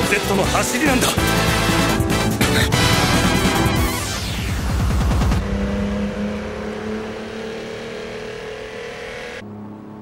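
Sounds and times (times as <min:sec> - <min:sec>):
racing car engine at high revs: 0:03.0 - 0:10.0.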